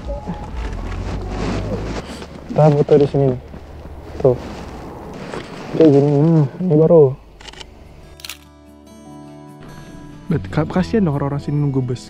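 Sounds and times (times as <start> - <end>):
faint background music: 0.0 - 12.0
camera clicks: 7.4 - 8.5.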